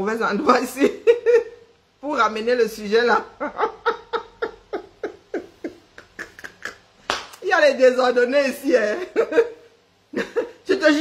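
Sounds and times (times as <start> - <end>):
woman laughing squeakily: 3.6 - 7.0.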